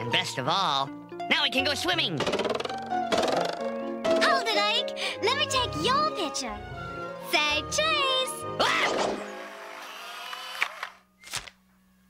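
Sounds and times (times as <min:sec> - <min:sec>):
camera shutter clicks: 0:10.2 - 0:11.6.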